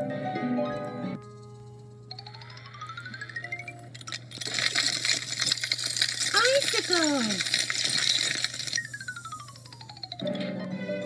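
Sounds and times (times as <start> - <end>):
bright jangling clinking clatter: 3.9 - 10.2.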